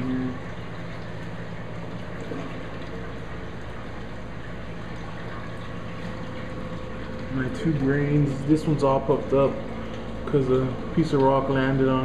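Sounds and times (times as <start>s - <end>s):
low pump hum: 0.0s - 12.0s
water rushing and trickling: 0.0s - 12.0s.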